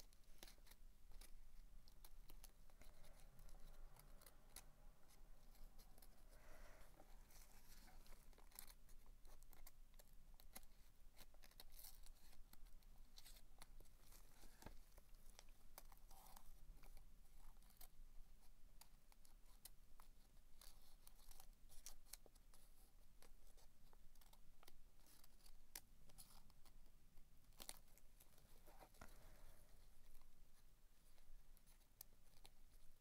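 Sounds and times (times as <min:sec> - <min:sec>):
paper crinkling and scratching: 0:00.0 - 0:33.0
small irregular clicks: 0:00.0 - 0:33.0.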